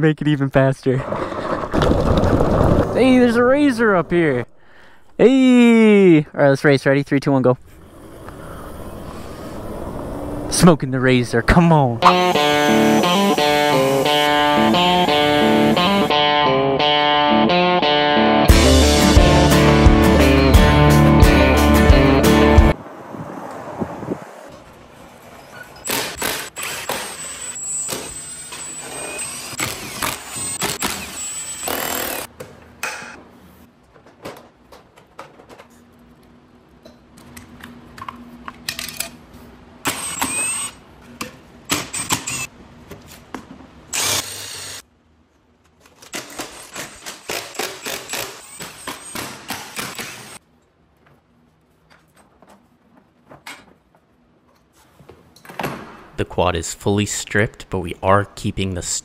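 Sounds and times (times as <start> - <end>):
power tool bursts: 12.0 - 16.1, 25.8 - 32.3, 39.8 - 40.8, 43.9 - 44.8, 46.2 - 50.4
clicks and clatter of parts: 33.8 - 39.3.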